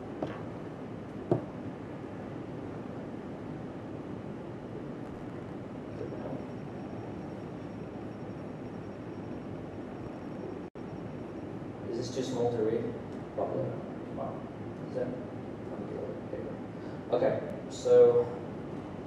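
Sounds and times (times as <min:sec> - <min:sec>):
faint high whine: 0:00.0 - 0:19.0
room tone hiss: 0:00.0 - 0:19.0.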